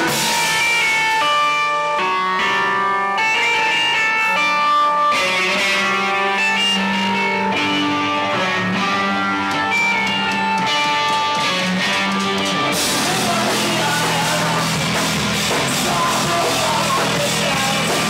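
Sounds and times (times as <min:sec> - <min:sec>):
rock band instrumental: 0:00.0 - 0:18.0.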